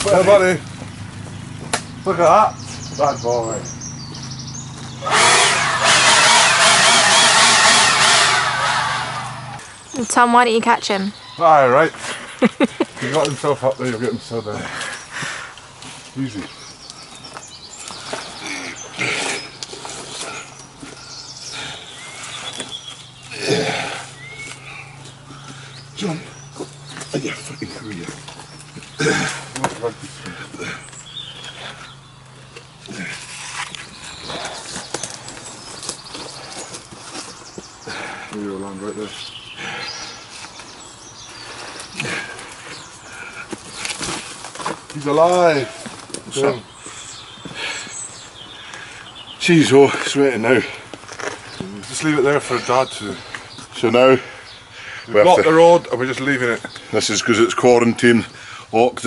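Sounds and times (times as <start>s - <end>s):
branches and bark scraping: 13.0s - 53.8s
man grunting and breathing hard: 23.3s - 26.4s, 28.9s - 31.0s, 41.9s - 43.5s.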